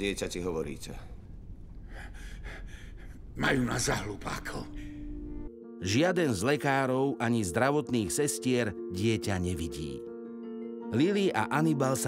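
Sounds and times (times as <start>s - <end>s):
person breathing: 1.8s - 3.3s, 4.7s - 5.3s.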